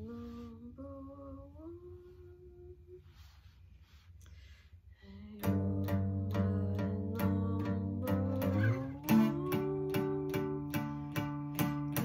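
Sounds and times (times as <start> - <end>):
woman humming: 0.0 - 3.3, 5.0 - 12.0.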